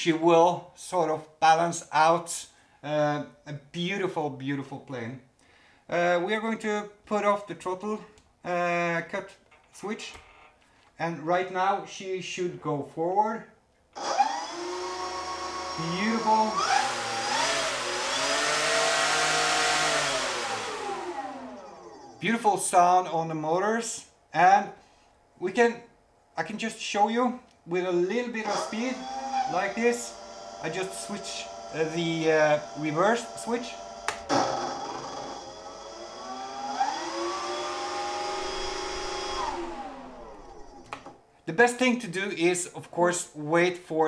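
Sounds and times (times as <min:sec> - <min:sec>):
electric motors and propellers whining: 0:14.0 - 0:22.2, 0:28.5 - 0:41.2.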